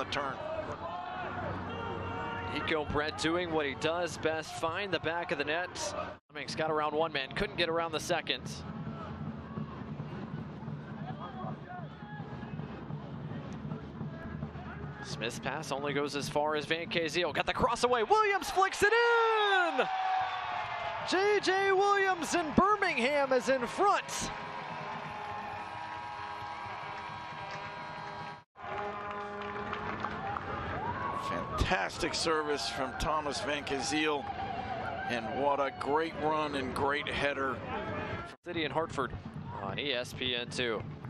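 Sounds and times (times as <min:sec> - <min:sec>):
stadium crowd noise: 0:00.0 - 0:41.0.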